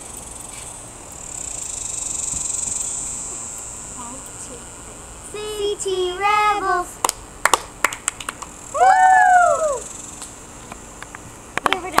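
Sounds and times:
girl squealing: 8.8 - 9.9.

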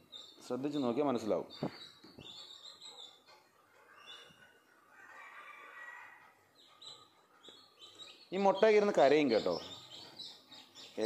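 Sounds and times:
chicks peeping: 0.0 - 3.3, 5.0 - 11.0.

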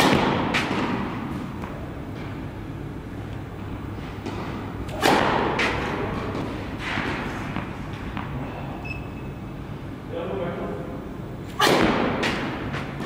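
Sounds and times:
tennis racket striking ball: 4.2 - 8.3, 11.5 - 13.0.

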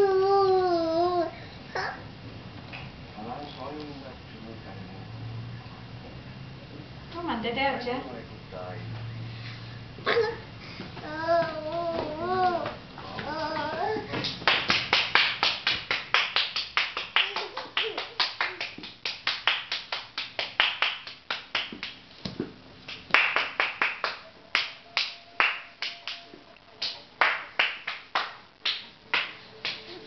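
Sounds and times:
fast hand clapping: 12.6 - 22.0, 22.8 - 30.0.

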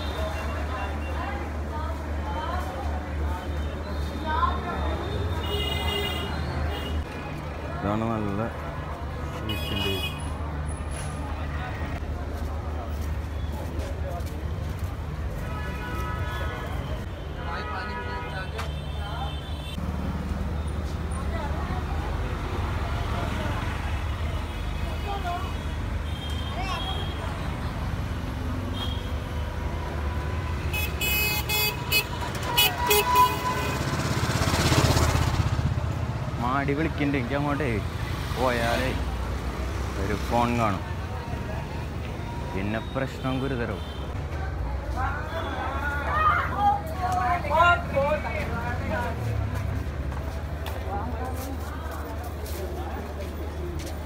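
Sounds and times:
street traffic rumble: 0.0 - 54.0
vehicle passing close: 33.6 - 36.6.

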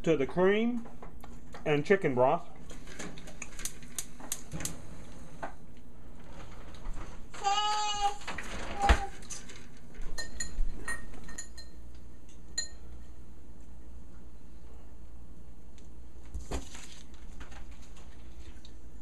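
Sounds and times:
utensils clinking on saucepan: 10.1 - 11.8.

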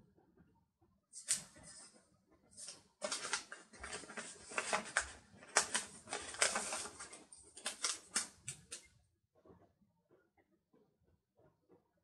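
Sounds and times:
paper rustling and crackling: 1.2 - 1.9, 2.6 - 8.9
stickers being peeled: 1.2 - 1.9, 2.6 - 8.9.

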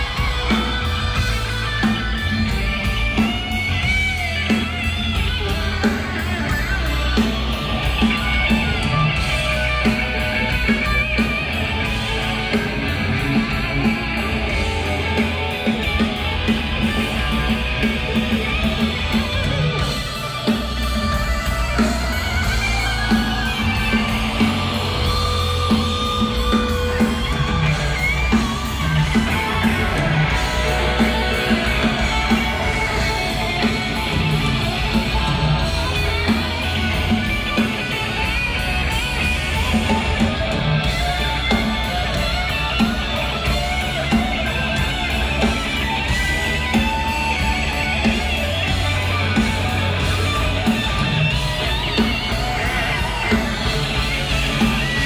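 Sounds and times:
rock band playing instrumental: 0.0 - 55.0.

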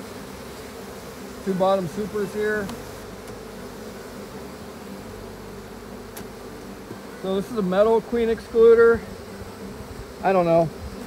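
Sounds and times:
honey bees buzzing: 0.0 - 11.0.

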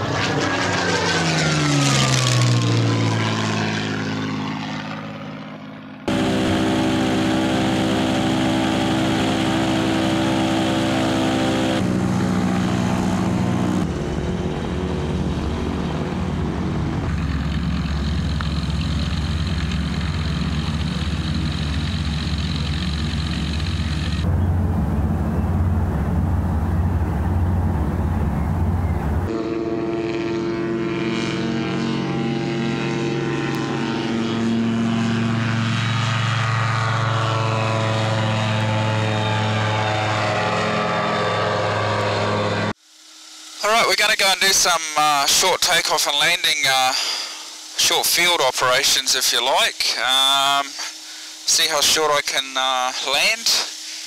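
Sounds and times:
microlight engine and propeller drone: 0.0 - 54.0.

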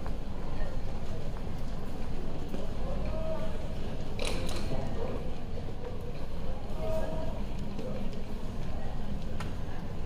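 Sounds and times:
airport terminal hum: 0.0 - 10.0.

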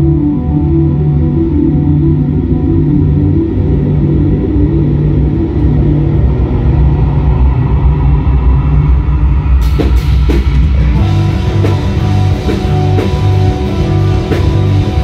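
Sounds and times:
rock band droning held notes: 0.0 - 15.0
drums crashing: 9.6 - 15.0.

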